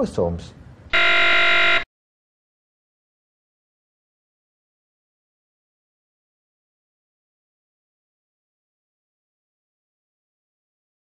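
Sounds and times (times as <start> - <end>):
harsh buzzer: 0.9 - 1.9.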